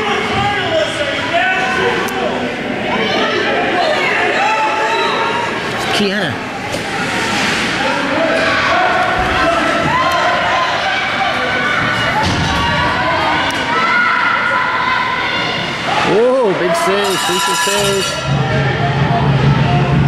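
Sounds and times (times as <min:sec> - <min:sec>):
spectators cheering and calling out: 0:00.0 - 0:20.0.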